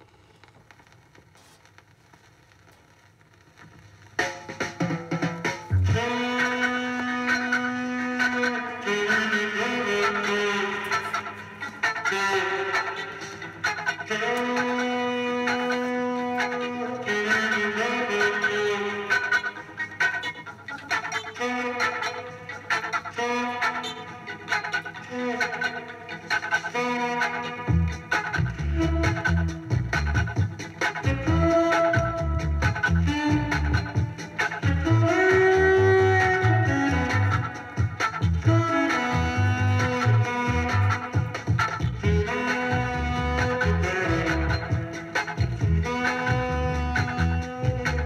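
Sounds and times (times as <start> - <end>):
reggae music from a record: 0.0 - 48.0
vinyl surface crackle and hum: 0.0 - 48.0.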